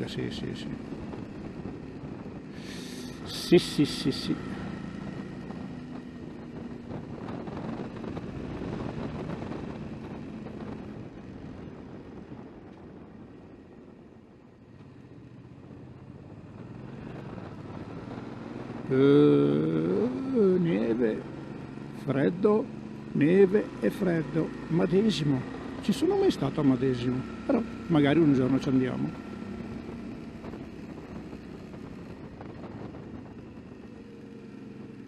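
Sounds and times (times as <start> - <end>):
motorcycle engine running: 0.0 - 35.0
man's voice: 2.8 - 4.5, 18.9 - 21.2, 22.0 - 29.2.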